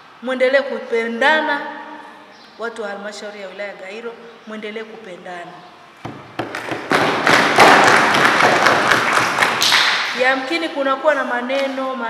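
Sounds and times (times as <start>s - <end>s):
crowd applause: 6.6s - 10.2s.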